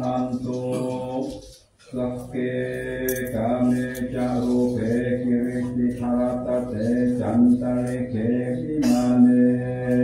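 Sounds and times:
monks chanting in unison: 0.0s - 10.0s.

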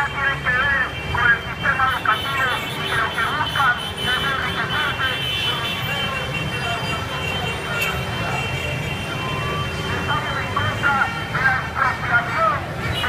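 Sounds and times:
low rumble of street traffic: 0.0s - 13.0s
voices of protest march: 0.0s - 13.0s.

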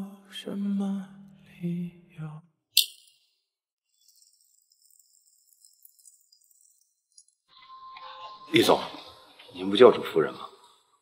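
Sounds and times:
soft music with jingling shimmer: 7.2s - 10.7s.

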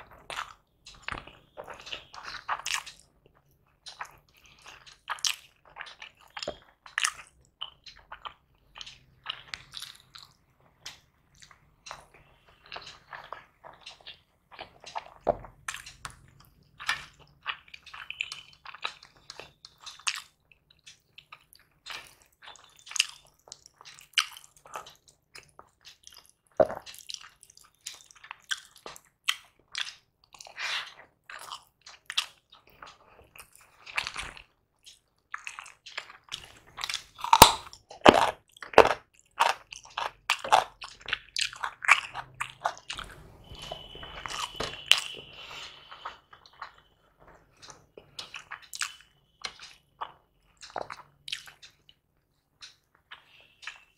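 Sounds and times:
person chewing and biting: 0.0s - 46.9s, 47.5s - 53.9s
crunchy bites: 33.6s - 46.7s.

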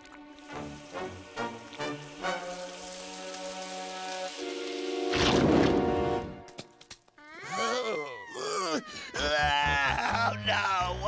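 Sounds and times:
cartoon fizzing and hissing: 0.1s - 6.1s.

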